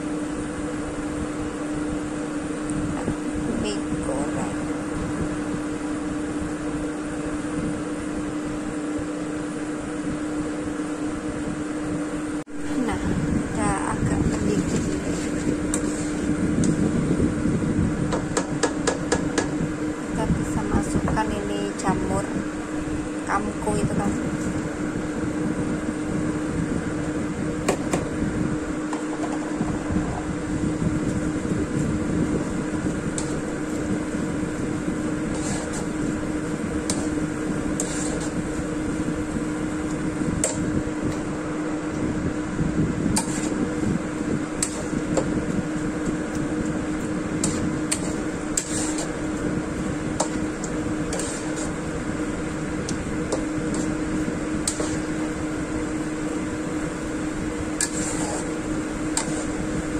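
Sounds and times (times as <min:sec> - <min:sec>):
steady hum: 0:00.0 - 0:59.9
spatula scraping a wok: 0:14.2 - 0:16.4, 0:35.0 - 0:38.7, 0:43.1 - 0:43.8, 0:44.5 - 0:45.3, 0:47.0 - 0:52.0, 0:53.0 - 0:56.4, 0:57.7 - 0:59.9.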